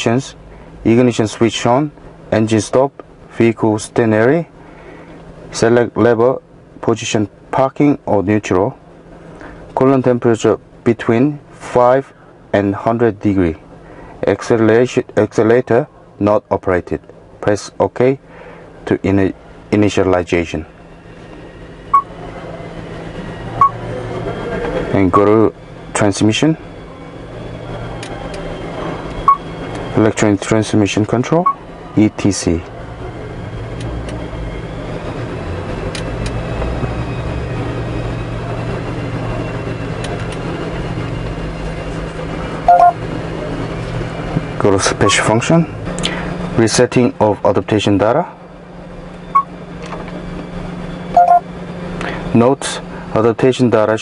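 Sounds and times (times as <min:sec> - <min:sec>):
low background hum: 0:00.0 - 0:54.0
short high electronic beeps: 0:42.7 - 0:43.0, 0:51.1 - 0:51.4.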